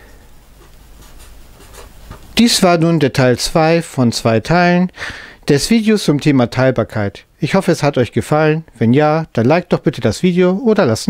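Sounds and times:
marker scratching on paper: 0:01.0 - 0:02.0.

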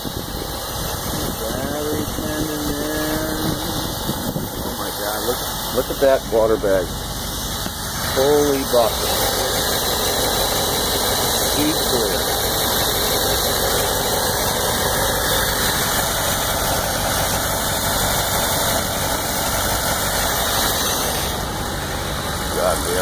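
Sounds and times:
car engine idling: 0:00.0 - 0:23.0.

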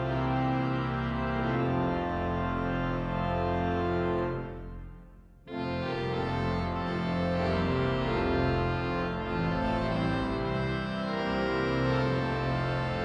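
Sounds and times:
pipe organ chords: 0:00.0 - 0:13.0.

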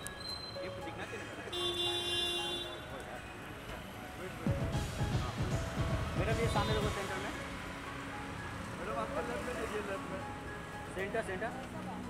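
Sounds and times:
street traffic: 0:00.0 - 0:12.0
vehicle horn: 0:01.5 - 0:02.9.

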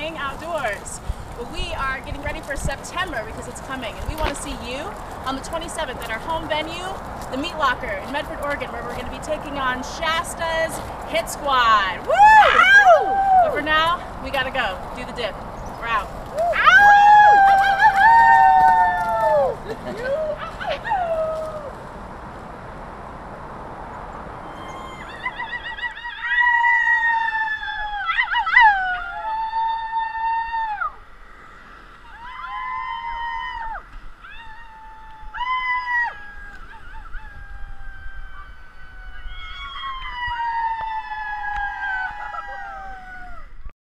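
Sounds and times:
howls with downward slides: 0:12.1 - 0:13.6, 0:16.4 - 0:21.8, 0:24.4 - 0:31.0, 0:32.0 - 0:43.7.

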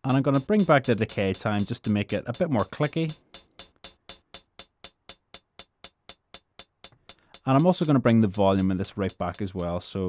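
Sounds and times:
closed hi-hat ticks: 0:00.0 - 0:10.0.

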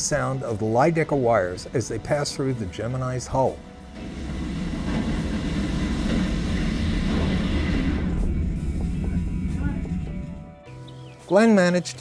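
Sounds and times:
wire rushing hum: 0:00.0 - 0:10.7
low rumble: 0:03.5 - 0:10.7.

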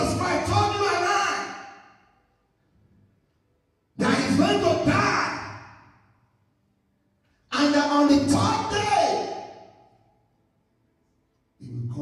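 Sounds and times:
man's voice through microphone: 0:00.0 - 0:02.0, 0:03.9 - 0:06.1, 0:07.4 - 0:09.9, 0:11.6 - 0:12.0.

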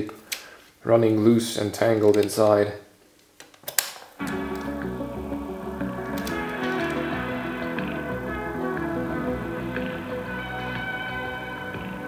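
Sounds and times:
music from small speaker: 0:04.2 - 0:12.0.

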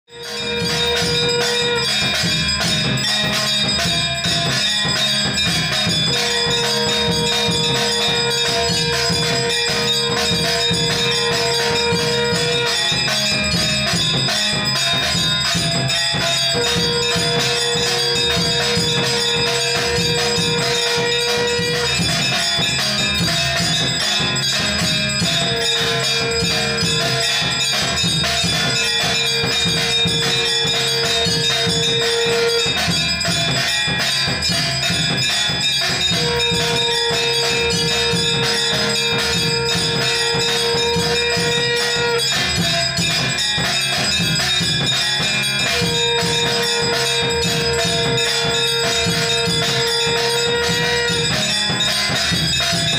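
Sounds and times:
bells ringing and clanging: 0:00.0 - 0:52.9.

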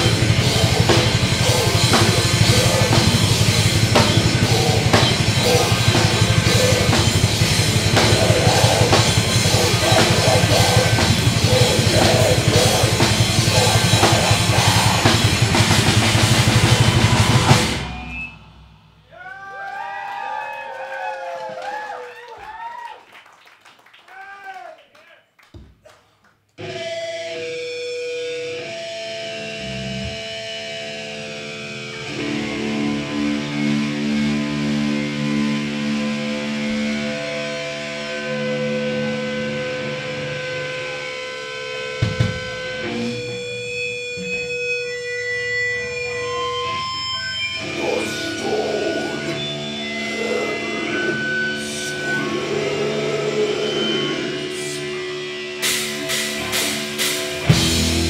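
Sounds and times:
distorted electric guitars: 0:00.0 - 0:19.2, 0:26.6 - 0:58.0
heavy metal band playing: 0:00.0 - 0:19.2, 0:26.6 - 0:58.0.

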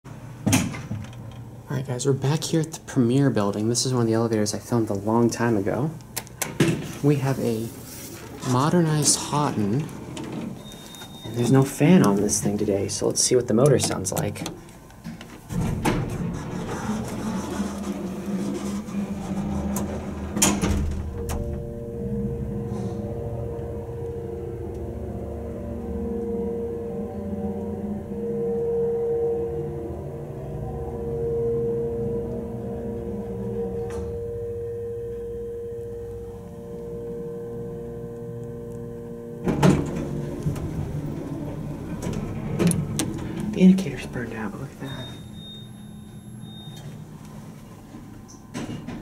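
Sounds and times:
elevator pump motor humming: 0:00.1 - 0:49.0
elevator knock: 0:18.1 - 0:22.2, 0:39.4 - 0:43.8.

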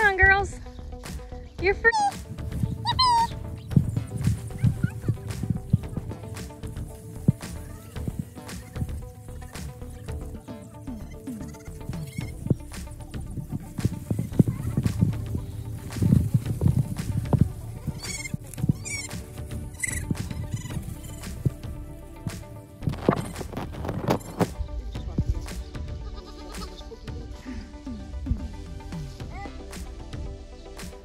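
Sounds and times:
background music: 0:00.0 - 0:31.0
goats bleating: 0:02.7 - 0:09.6, 0:10.2 - 0:12.7, 0:13.7 - 0:21.5, 0:25.9 - 0:26.9.

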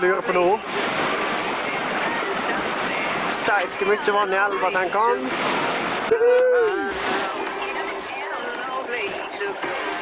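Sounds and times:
river rushing over boulders: 0:00.0 - 0:10.0.

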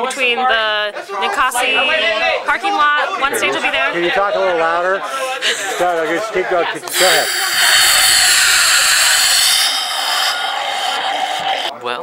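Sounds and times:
beer hissing from tap: 0:06.9 - 0:11.7.

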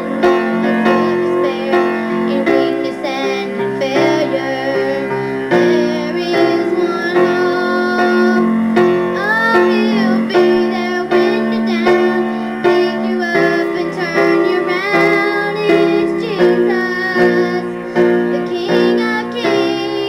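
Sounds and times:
instrumental accompaniment: 0:00.0 - 0:20.0
woman singing with vibrato: 0:00.0 - 0:20.0.

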